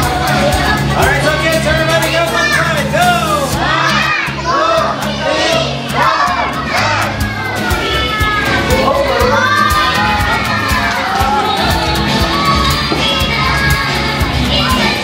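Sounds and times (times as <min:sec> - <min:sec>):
background music with beat: 0:00.0 - 0:15.0
children shouting and cheering: 0:00.0 - 0:15.0.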